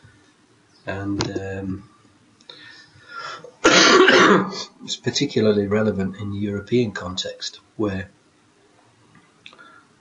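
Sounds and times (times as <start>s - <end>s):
man clearing throat: 3.6s - 4.8s.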